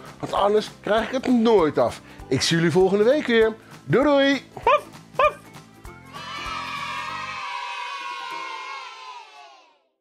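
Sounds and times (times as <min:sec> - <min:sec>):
children cheering and shouting: 0:06.0 - 0:09.9.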